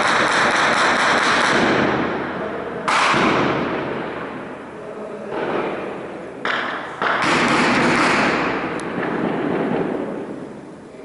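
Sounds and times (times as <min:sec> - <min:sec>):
sharp crack: 0:00.0 - 0:04.5, 0:05.3 - 0:10.4
rolling blast: 0:00.0 - 0:11.0.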